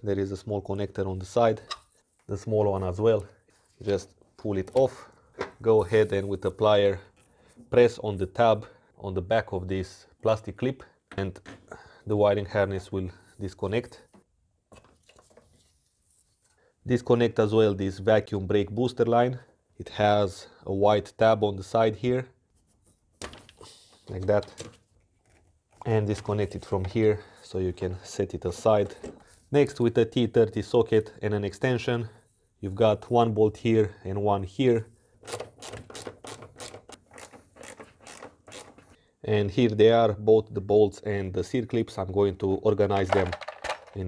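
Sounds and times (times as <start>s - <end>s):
ratchet wrench clicking: 35.3s - 38.8s.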